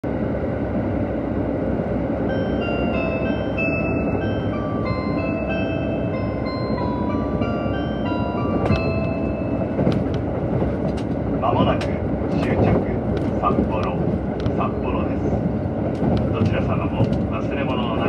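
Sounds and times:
diesel train rumble: 0:00.0 - 0:18.0
chime melody: 0:02.3 - 0:09.8.

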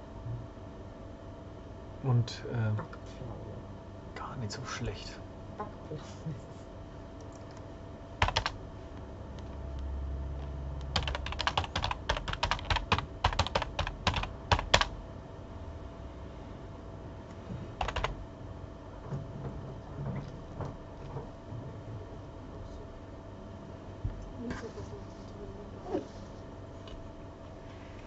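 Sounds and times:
typing on computer keyboard: 0:08.2 - 0:08.6, 0:10.8 - 0:14.9, 0:17.8 - 0:18.2.

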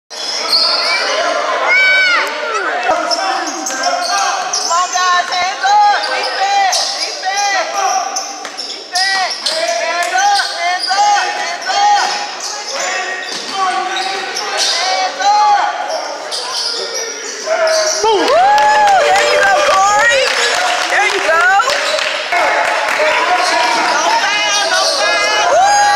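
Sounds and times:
sneakers squeaking: 0:00.1 - 0:01.5, 0:02.2 - 0:18.4, 0:23.3 - 0:25.9.

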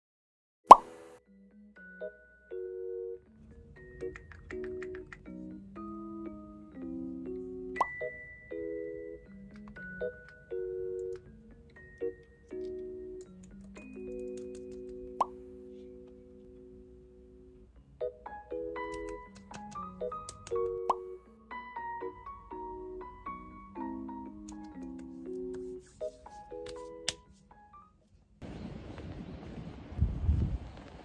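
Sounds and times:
cartoon pop sound effect: 0:00.7 - 0:01.0
soft mallet background music: 0:01.2 - 0:27.9.

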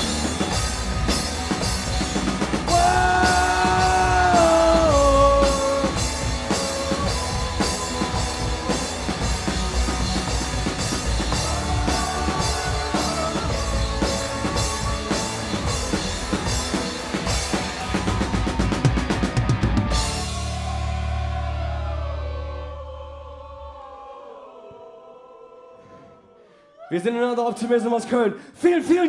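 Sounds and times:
fast drum roll: 0:00.0 - 0:20.5
live rock band playing: 0:00.0 - 0:20.7.

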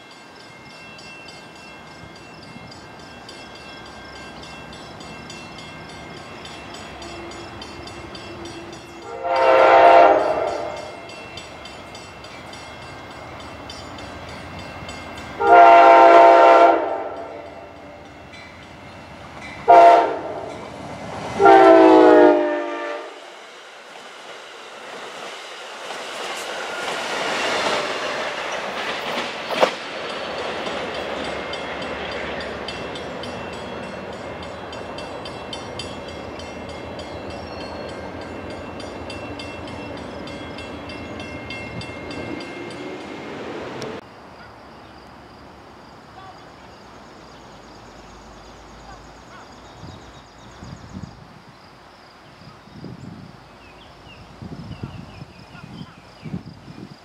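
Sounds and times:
train wheels rumbling on rail: 0:00.0 - 0:44.1
locomotive horn: 0:08.3 - 0:11.1, 0:15.4 - 0:18.0, 0:19.6 - 0:20.6, 0:21.4 - 0:23.3.

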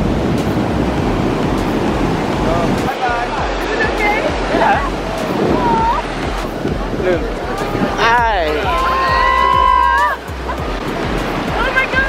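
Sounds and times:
ocean surf breaking: 0:00.0 - 0:12.0.

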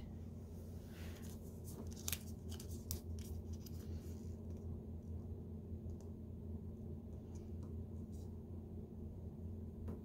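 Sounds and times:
steady low hum: 0:00.0 - 0:10.0
paper rustling and creasing: 0:01.1 - 0:04.5.

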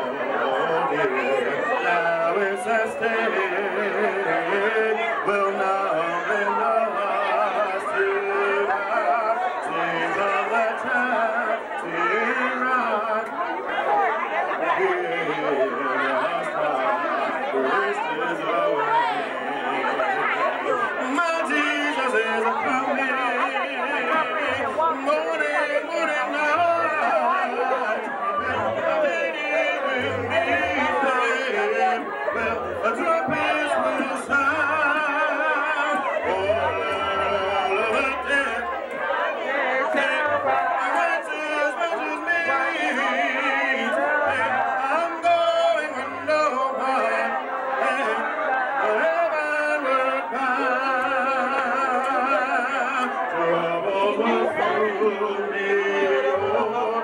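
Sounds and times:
congregation singing a hymn: 0:00.0 - 0:57.0
man singing into a microphone: 0:00.0 - 0:57.0
overlapping voices talking: 0:00.0 - 0:57.0.

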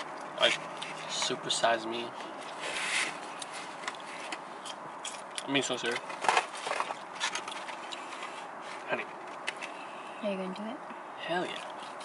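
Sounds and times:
paper packaging rustling: 0:05.8 - 0:09.5.

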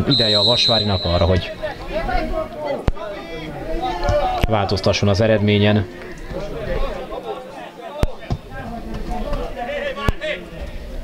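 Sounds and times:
distant shouts and chatter: 0:00.0 - 0:11.0.

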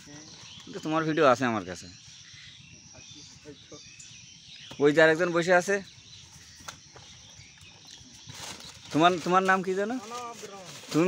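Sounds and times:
newspaper rustling: 0:08.2 - 0:11.0.

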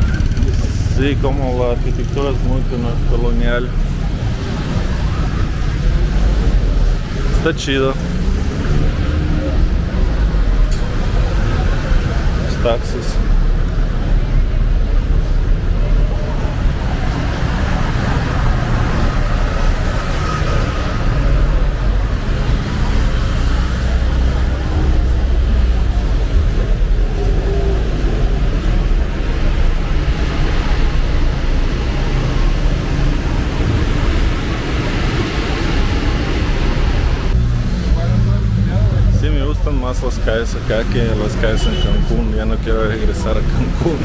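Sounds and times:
cars passing: 0:00.0 - 0:44.0
chatter of passers-by: 0:00.0 - 0:44.0.

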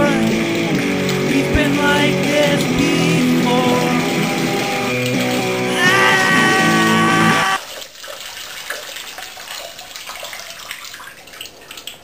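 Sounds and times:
urine stream splashing in water: 0:00.0 - 0:06.8, 0:07.6 - 0:12.0.

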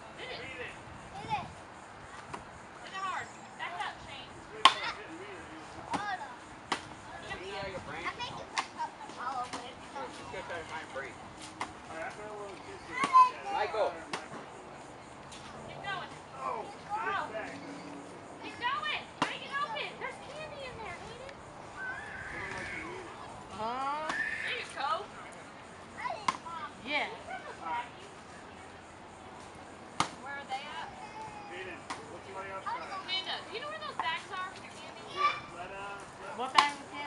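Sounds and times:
plastic bat hitting pinata: 0:04.6 - 0:04.9, 0:05.9 - 0:06.9, 0:08.5 - 0:08.8, 0:12.9 - 0:13.3, 0:14.1 - 0:14.4, 0:19.2 - 0:19.5, 0:26.2 - 0:26.4, 0:30.0 - 0:30.2, 0:31.8 - 0:32.1, 0:36.5 - 0:36.8
children calling out: 0:12.8 - 0:13.7, 0:19.5 - 0:25.0, 0:30.7 - 0:31.9.

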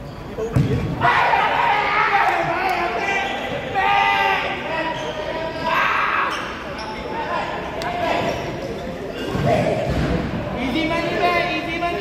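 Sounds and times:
players' voices: 0:00.0 - 0:12.0
ball kicked and bouncing: 0:00.5 - 0:00.9.

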